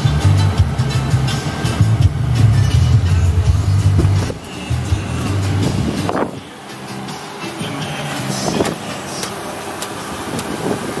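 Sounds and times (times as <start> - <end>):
pickup engine idling: 0.0 - 11.0
light engine tick: 8.6 - 10.6.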